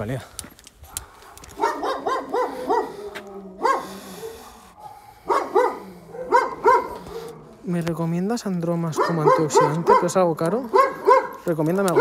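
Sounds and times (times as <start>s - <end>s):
dog barking: 0.8s - 7.6s, 8.8s - 12.0s.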